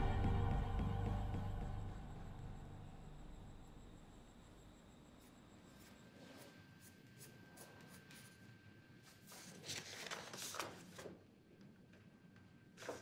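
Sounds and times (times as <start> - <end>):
music: 0.0 - 3.5.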